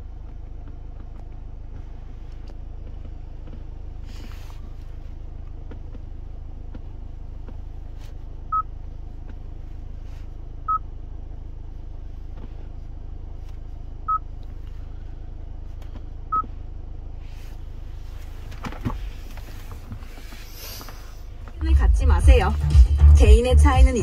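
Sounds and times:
low cabin hum: 0.0s - 24.0s.

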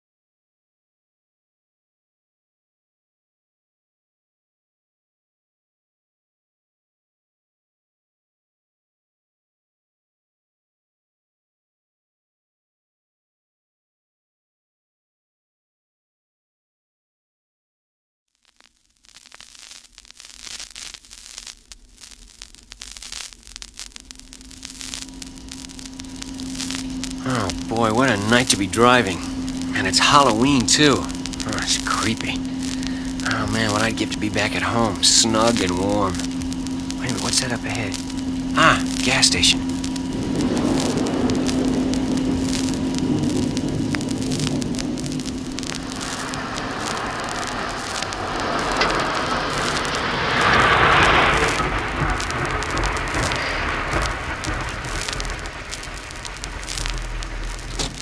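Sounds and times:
vinyl record crackle and pops: 18.3s - 58.0s
low hum: 21.7s - 58.0s
rain: 22.6s - 58.0s
car engine drone: 24.2s - 58.0s
rushing hiss: 24.8s - 58.0s.

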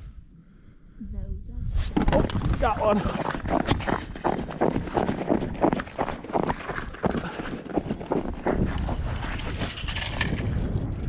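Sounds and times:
running footsteps on snowy ice: 2.4s - 10.4s.

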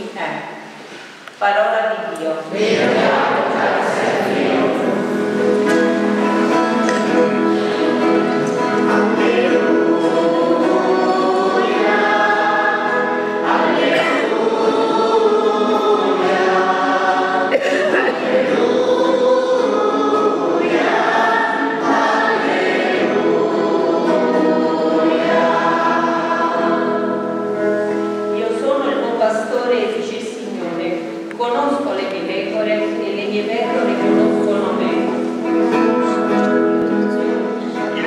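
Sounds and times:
choir singing a chant: 2.5s - 5.5s, 6.2s - 27.9s
guitar: 2.5s - 38.0s.

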